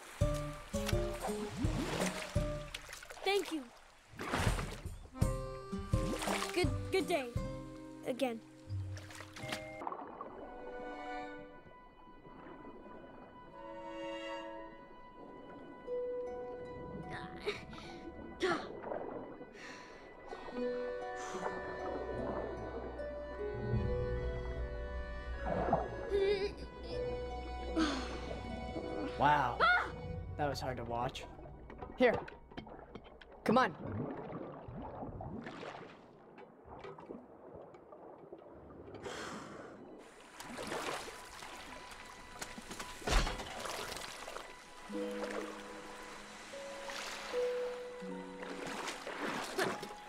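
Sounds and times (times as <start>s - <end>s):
rush of water: 0.0s - 4.9s, 33.5s - 50.0s
water lapping: 0.0s - 24.2s, 25.3s - 50.0s
film score music: 0.0s - 35.4s, 40.0s - 50.0s
low underwater rumble: 31.3s - 40.0s.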